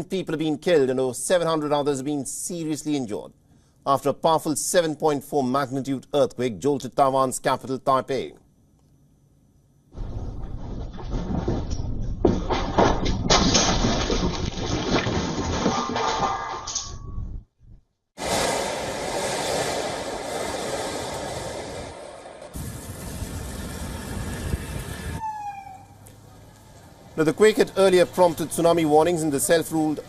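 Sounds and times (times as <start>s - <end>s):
furniture and objects rattling: 10.0s - 13.4s
earthquake rumble: 10.0s - 15.8s, 18.2s - 25.2s
steady outdoor noise: 18.2s - 30.0s.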